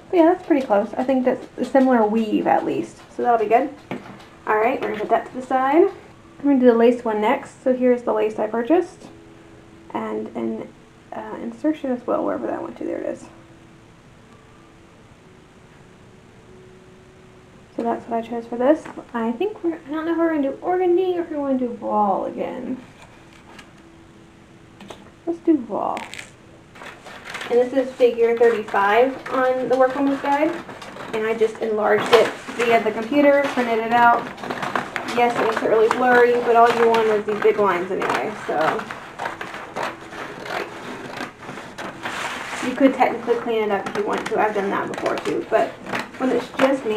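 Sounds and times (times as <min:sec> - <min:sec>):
woman speaking: 0:00.0 - 0:03.8, 0:04.4 - 0:09.1, 0:09.9 - 0:13.4, 0:17.8 - 0:22.8, 0:25.2 - 0:26.4, 0:27.4 - 0:34.3, 0:35.0 - 0:39.0, 0:42.6 - 0:46.9
faint steady hum: 0:00.0 - 0:46.9
paper rustling: 0:22.7 - 0:23.8, 0:26.0 - 0:46.9.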